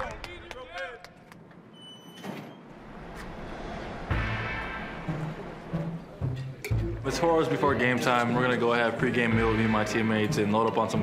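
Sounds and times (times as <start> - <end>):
background music: 3.4 - 11.0.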